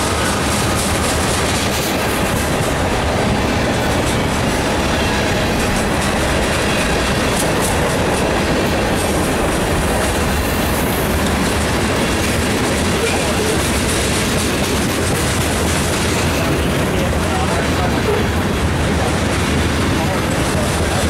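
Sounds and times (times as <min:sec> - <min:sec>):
train wheels running on rails: 0:00.0 - 0:21.0.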